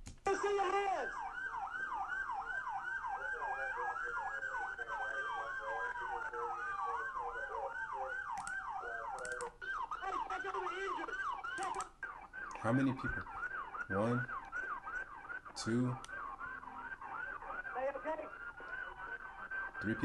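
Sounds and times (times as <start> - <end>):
police siren yelping: 0.3 - 20.0
siren wailing: 0.3 - 20.0.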